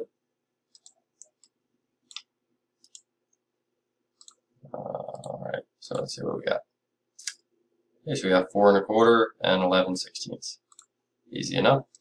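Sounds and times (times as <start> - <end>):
computer mouse clicking: 0.7 - 3.1, 4.2 - 4.4, 10.7 - 11.0
low hummed voice: 4.6 - 6.6.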